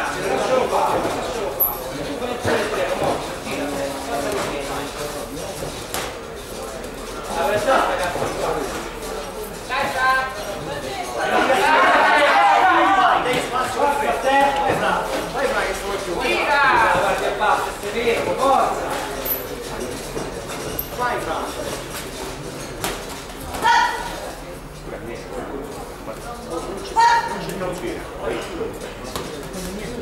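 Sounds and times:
voices calling out in echoing hall: 0.0 - 30.0
loud shout: 11.4 - 13.3, 23.6 - 24.1.

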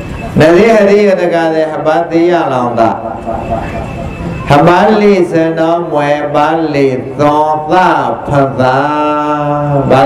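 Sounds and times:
man chanting: 4.5 - 10.0.

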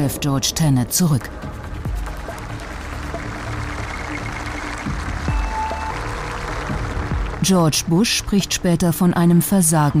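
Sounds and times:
low steady drone music: 0.0 - 10.0.

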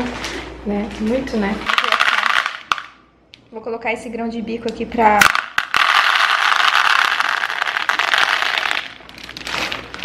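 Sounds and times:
chickpeas rattling into a bowl: 1.7 - 2.9, 5.2 - 10.0.

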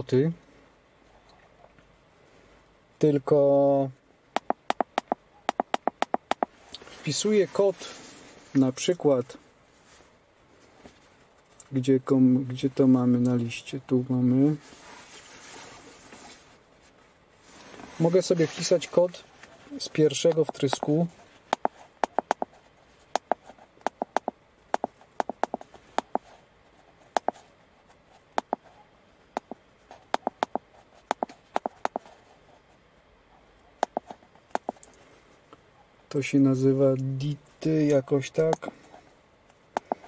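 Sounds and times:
touchscreen keypress clicks: 4.4 - 6.5, 21.6 - 22.5, 23.2 - 26.2, 30.2 - 32.0, 33.8 - 34.8, 39.8 - 40.0.

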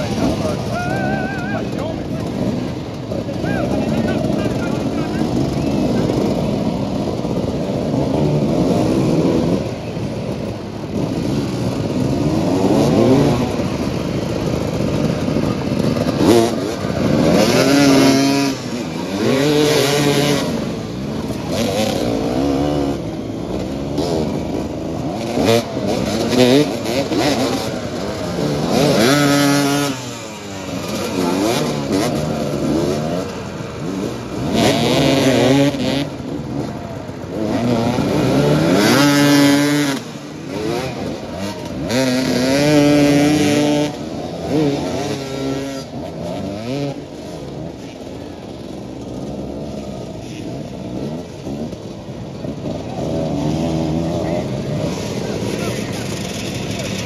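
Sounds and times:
motorcycles revving and accelerating: 0.0 - 57.0.

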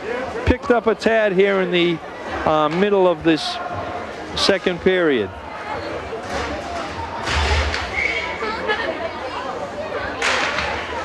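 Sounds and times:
steady background noise: 0.0 - 11.0
voices echoing in arena: 0.0 - 11.0.

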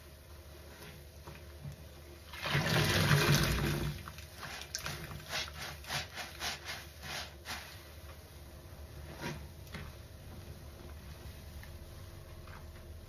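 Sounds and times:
water gushing from sponge: 2.3 - 7.7
wet sponge squelches: 2.3 - 8.0.

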